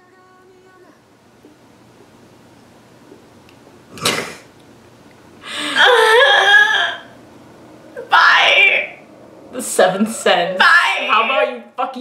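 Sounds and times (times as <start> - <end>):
woman wailing mock crying: 5.5 - 7.1.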